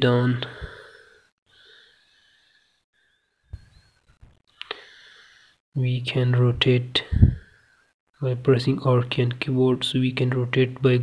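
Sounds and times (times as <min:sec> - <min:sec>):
faint breathing: 0:00.4 - 0:05.6, 0:07.0 - 0:08.0
soft low thumps: 0:07.1 - 0:07.4.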